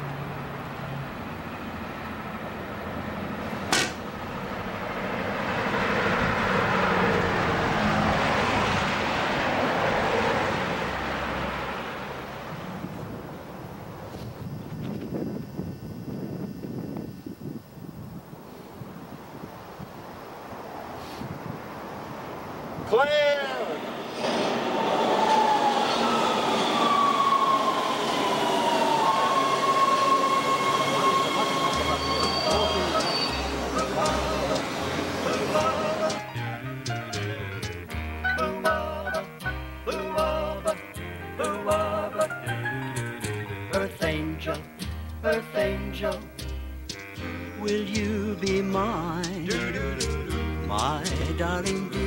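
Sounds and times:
passing vehicle rush: 0.0 - 16.6, 17.6 - 52.0
train wheels rumbling on rail: 0.0 - 17.8, 18.4 - 38.0, 46.1 - 52.0
high brake whine: 0.0 - 52.0.

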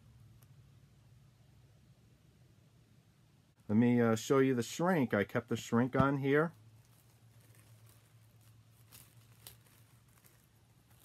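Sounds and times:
low steady hum: 0.0 - 11.0
plastic wrap crinkling: 5.6 - 11.0.

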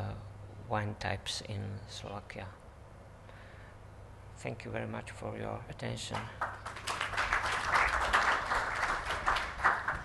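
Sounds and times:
audience applauding: 6.4 - 10.0.

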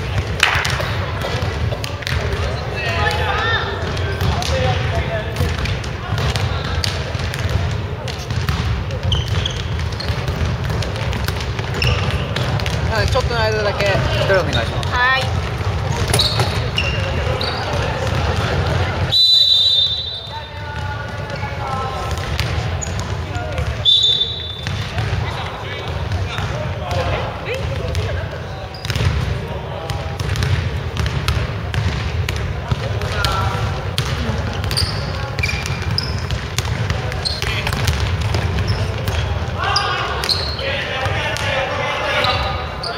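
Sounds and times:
sneaker squeaks: 0.0 - 29.5, 32.8 - 42.9
players calling out: 0.0 - 30.6, 31.6 - 42.9
basketball bouncing on wooden floor: 5.4 - 19.0, 24.6 - 28.2, 28.8 - 29.3, 29.9 - 39.6.

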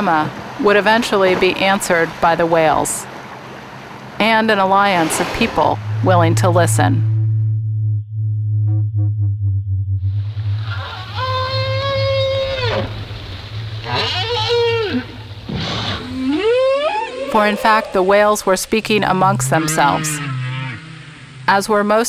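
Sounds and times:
steady low hum: 5.6 - 22.0
whale calls underwater: 10.1 - 22.0.

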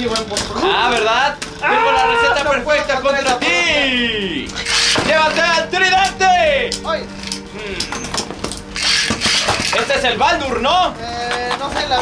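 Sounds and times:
spinning tops clashing: 4.5 - 5.3, 8.6 - 10.0.

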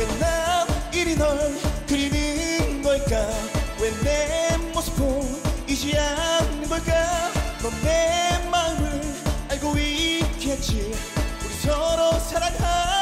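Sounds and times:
dance-pop music with singing: 0.0 - 13.0.

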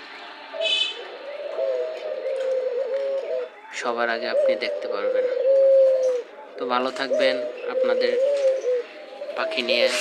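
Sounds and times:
doves cooing: 0.4 - 10.0.

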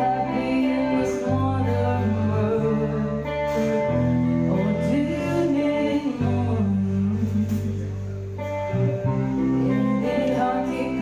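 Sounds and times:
electric guitar chord: 0.0 - 11.0
person singing: 0.0 - 11.0.

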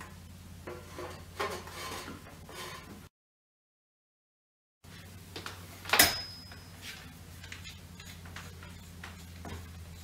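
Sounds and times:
sharp click with high ring: 5.9 - 6.7.

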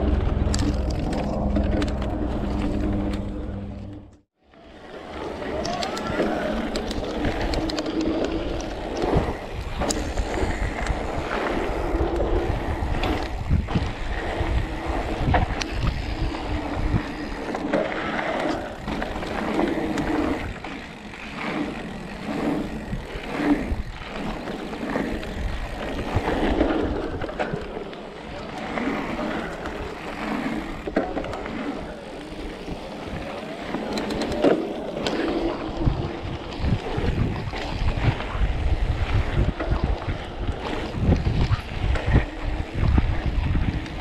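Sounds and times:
bike frame and chain rattling: 0.0 - 4.2, 5.0 - 44.0
electric motor hum: 0.0 - 4.2
wind on microphone: 5.3 - 27.8, 28.7 - 44.0.

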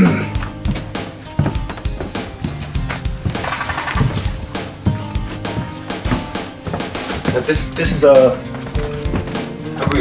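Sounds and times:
music with steady drum beat: 0.0 - 10.0.

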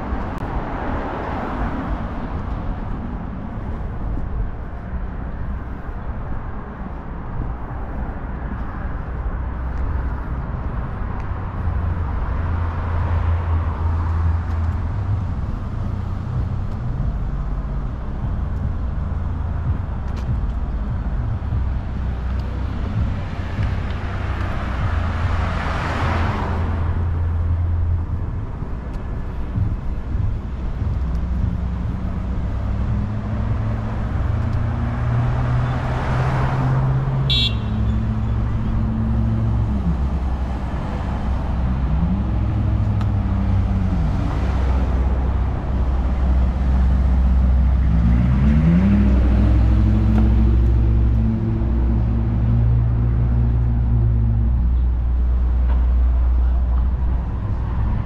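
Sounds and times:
road traffic rumble: 0.0 - 58.0
vehicles passing by: 0.0 - 58.0.

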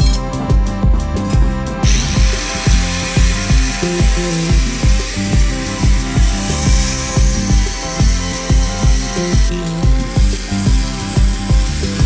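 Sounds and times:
background music with bass beat: 0.0 - 12.0
angle grinder grinding metal: 1.2 - 12.0.

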